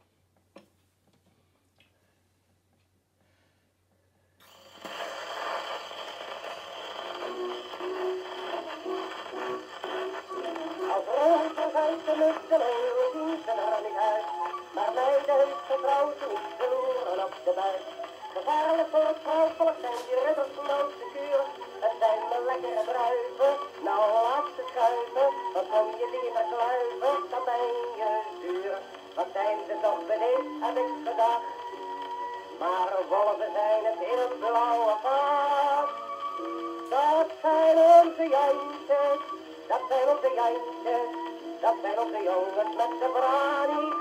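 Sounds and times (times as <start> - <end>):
record surface hiss and crackle: 0.0 - 44.0
instrumental music from gramophone: 4.4 - 44.0.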